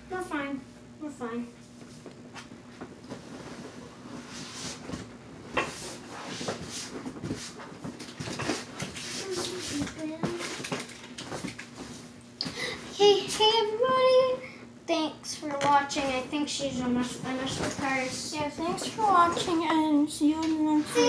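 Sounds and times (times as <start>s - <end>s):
faint steady hum: 0.0s - 21.0s
girl singing high notes: 20.6s - 21.0s.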